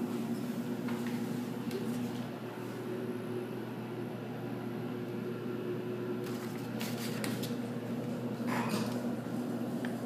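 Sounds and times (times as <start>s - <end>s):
elevator machine hum: 0.0s - 10.0s.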